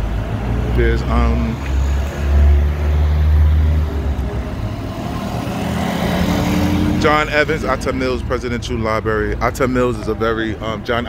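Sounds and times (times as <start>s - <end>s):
vehicle engine driving past: 0.0s - 8.5s.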